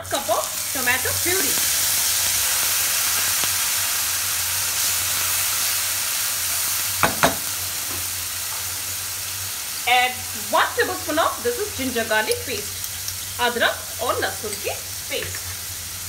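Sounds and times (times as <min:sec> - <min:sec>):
puree sizzling in hot oil: 0:00.0 - 0:16.0.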